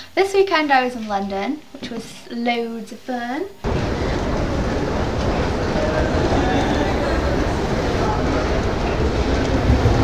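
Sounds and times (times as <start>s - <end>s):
escalator rumble and clatter: 3.6s - 10.0s
faint voices: 3.7s - 10.0s.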